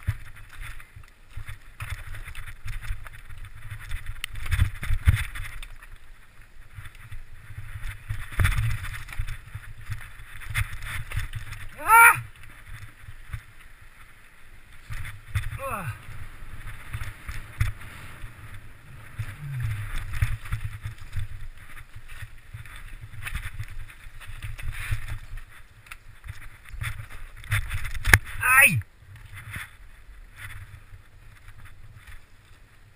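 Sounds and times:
mountain bike rattling: 0.0s - 28.4s, 29.0s - 32.9s.

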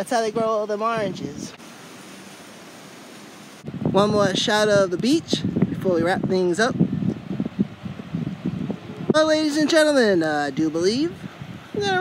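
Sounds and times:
distant surf: 0.0s - 12.0s
breeze hiss: 1.2s - 4.1s
man's voice: 3.9s - 6.8s, 9.1s - 11.2s, 11.8s - 12.0s.

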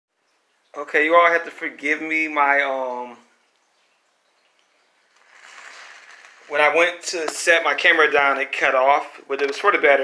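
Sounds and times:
faint steady hiss: 0.1s - 10.0s.

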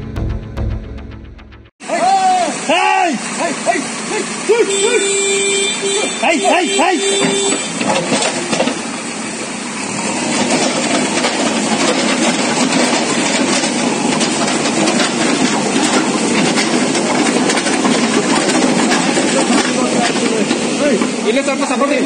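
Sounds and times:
diesel engine running: 0.0s - 22.0s.

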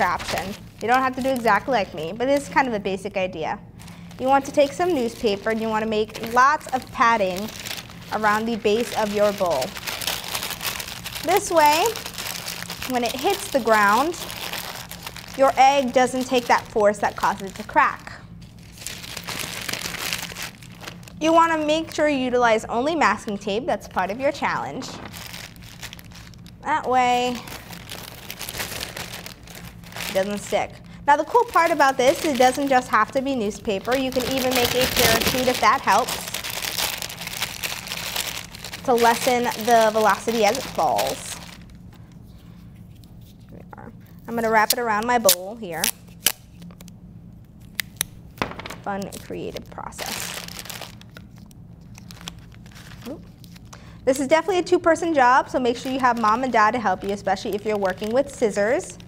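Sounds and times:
newspaper crumpling: 0.0s - 2.7s, 3.8s - 21.5s, 24.0s - 43.5s, 47.6s - 54.2s, 55.0s - 59.0s.

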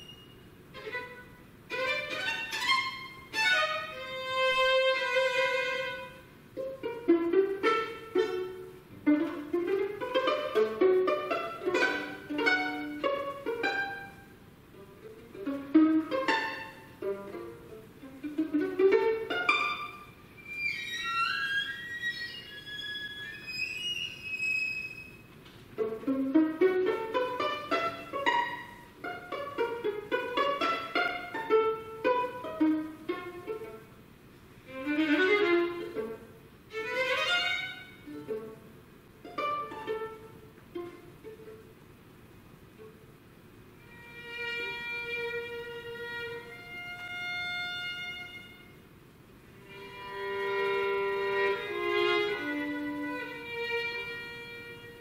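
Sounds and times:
solo violin playing: 0.0s - 34.0s, 34.6s - 41.9s, 43.7s - 55.0s.

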